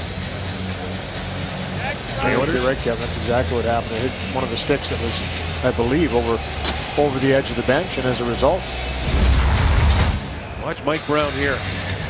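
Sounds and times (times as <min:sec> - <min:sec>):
background music over speakers: 0:00.0 - 0:12.0
crowd murmur: 0:00.6 - 0:09.0.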